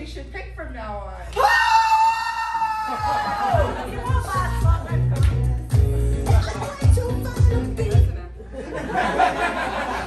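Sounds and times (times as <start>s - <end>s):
woman screaming: 1.4s - 3.7s.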